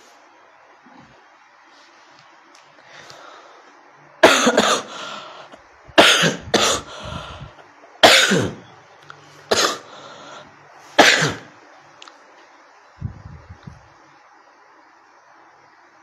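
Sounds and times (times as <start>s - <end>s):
man coughing: 4.2s - 5.0s, 6.0s - 6.9s, 8.0s - 8.6s, 9.5s - 9.9s, 11.0s - 11.5s.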